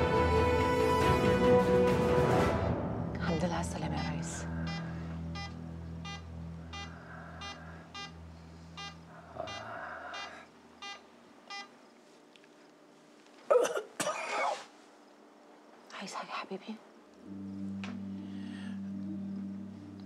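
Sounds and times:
low background music: 0.0s - 9.7s, 17.2s - 20.0s
patient monitor beeping: 4.0s - 11.8s.

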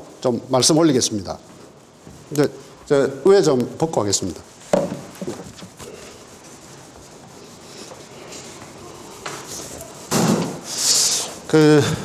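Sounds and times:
cloth rustling against microphone: 0.6s - 11.5s.

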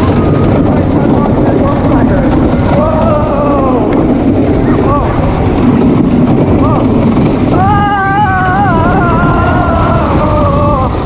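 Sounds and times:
roller coaster rumble: 0.0s - 11.0s
riders whooping: 2.0s - 11.0s.

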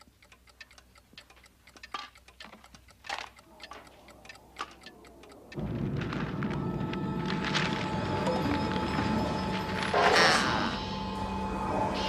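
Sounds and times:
quiet ticking: 0.0s - 6.2s.

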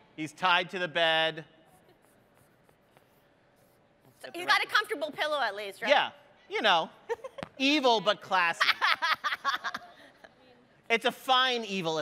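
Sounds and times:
marker drawing on paper: 1.6s - 5.2s.

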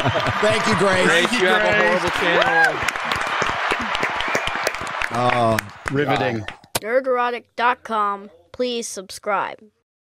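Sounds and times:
people clapping: 0.0s - 6.7s.

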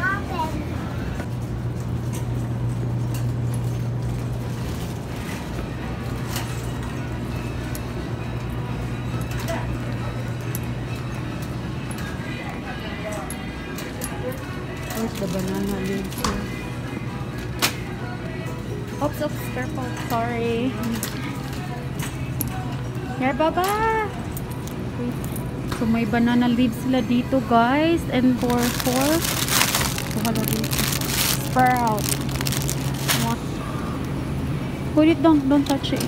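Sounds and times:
steady low hum: 0.0s - 36.0s
background music: 5.1s - 36.0s
plastic bag rustling: 14.9s - 16.2s, 28.3s - 33.5s.

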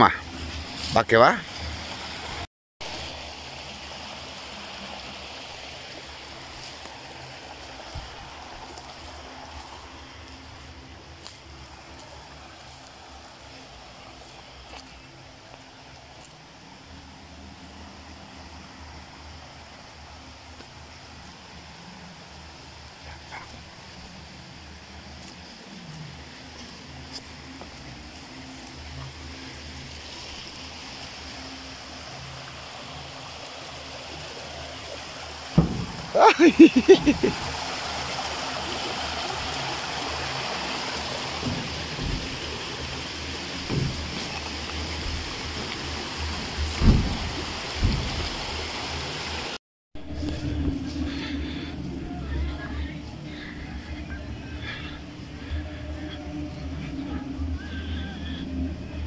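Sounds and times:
river water rushing: 0.0s - 59.0s.

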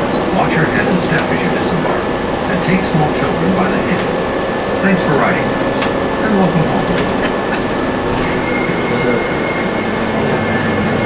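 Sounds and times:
bus engine and road drone: 0.0s - 11.0s.

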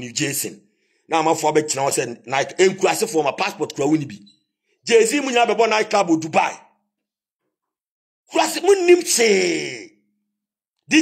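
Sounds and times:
man talking: 0.0s - 6.7s, 8.3s - 10.0s.

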